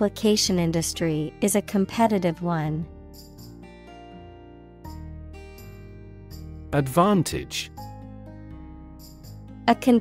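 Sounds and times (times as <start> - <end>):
soft music with plucked guitar: 0.0 - 10.0.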